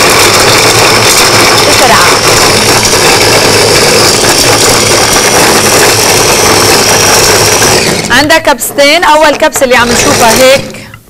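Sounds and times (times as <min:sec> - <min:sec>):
electric chopper motor running: 0:00.0 - 0:08.2, 0:09.8 - 0:10.8
garlic tumbling in plastic bowl: 0:00.0 - 0:10.8.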